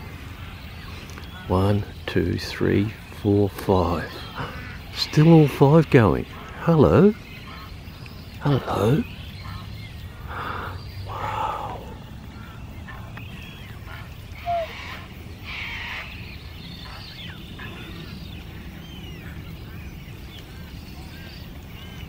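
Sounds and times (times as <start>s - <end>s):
swans calling softly: 3.9s - 16.2s
faint high peeps: 14.4s - 15.1s.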